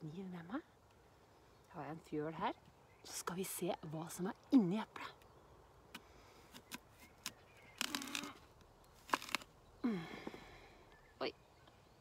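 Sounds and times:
knife crunching through apple: 6.6s - 8.4s, 9.0s - 9.5s.

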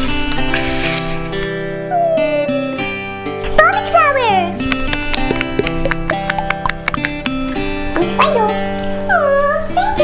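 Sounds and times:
background music: 0.0s - 9.9s
fidget toy bubbles popping: 4.7s - 7.6s.

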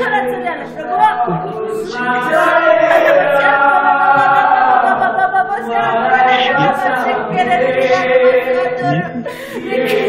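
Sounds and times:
two men singing: 1.1s - 10.0s.

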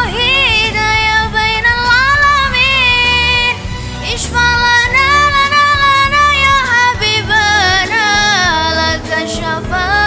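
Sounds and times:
backing track with low bass: 0.0s - 10.0s
girl singing devotional song: 0.0s - 10.0s.

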